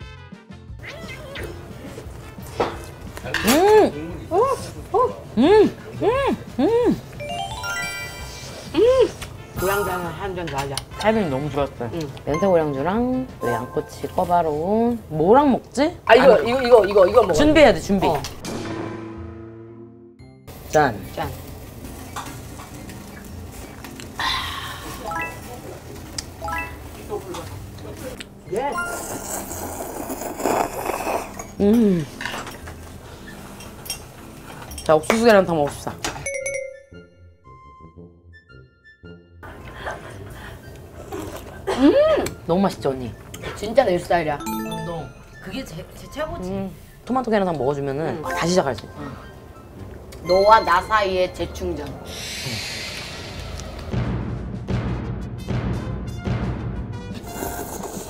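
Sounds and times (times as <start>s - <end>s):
person slurping noodles: 28.8s - 31.6s, 57.2s - 58.0s
chopsticks and dishes clinking: 28.8s - 36.4s.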